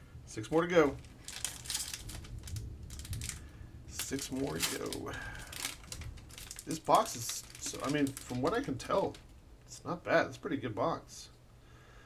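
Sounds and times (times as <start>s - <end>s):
foil wrapper crinkling and tearing: 0.8s - 9.3s.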